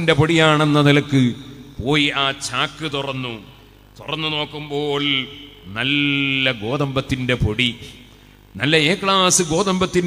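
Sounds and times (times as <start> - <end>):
man chanting: 0.0 - 8.0, 8.6 - 10.0.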